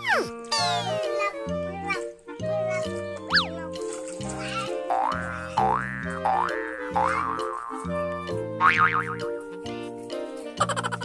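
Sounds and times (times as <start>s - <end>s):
playful children's music: 0.0s - 11.0s.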